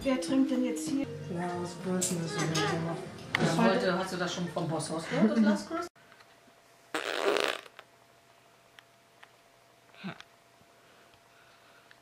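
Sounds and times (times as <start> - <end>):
faint steady hum: 5.0 - 12.0.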